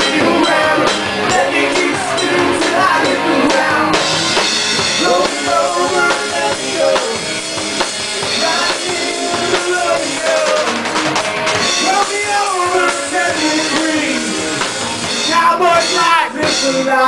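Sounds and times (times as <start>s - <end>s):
person singing: 0.0s - 10.9s, 11.6s - 17.0s
drum kit beat: 0.0s - 17.0s
electric bass guitar: 0.0s - 17.0s.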